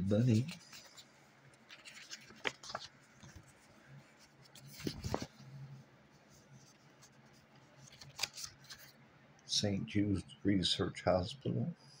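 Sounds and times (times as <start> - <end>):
paper pages rustling: 0.0 - 5.6, 6.2 - 9.0.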